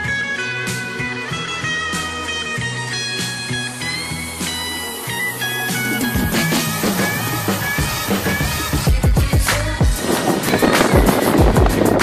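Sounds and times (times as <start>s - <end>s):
guitar and bass music: 0.0s - 12.0s.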